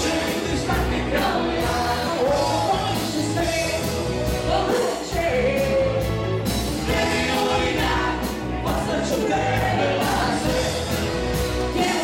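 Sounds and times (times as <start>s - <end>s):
woman singing lead: 0.0s - 11.0s, 11.6s - 12.0s
live pop band playing: 0.0s - 12.0s.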